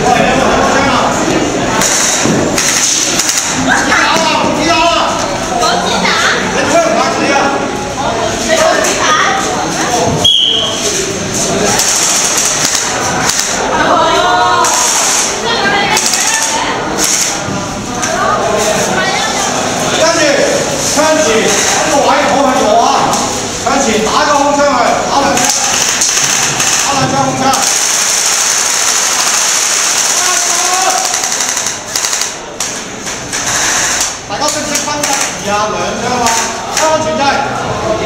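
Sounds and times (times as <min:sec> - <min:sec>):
group of people talking: 0:00.0 - 0:38.0.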